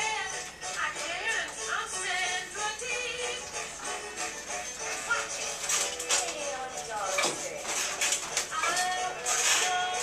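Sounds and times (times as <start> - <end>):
young woman singing sliding voice: 8.5 - 10.0.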